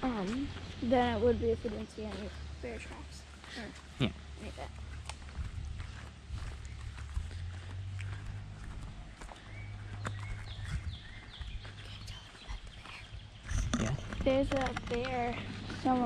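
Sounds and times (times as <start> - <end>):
footsteps on dirt trail: 0.0 - 16.0
low rumble on microphone: 4.8 - 16.0.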